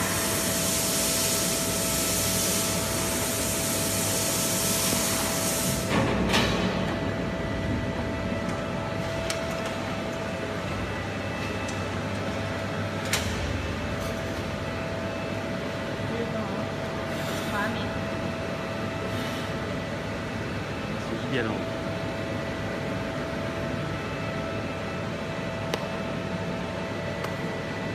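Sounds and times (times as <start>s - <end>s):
machinery humming with whine: 0.0s - 27.9s.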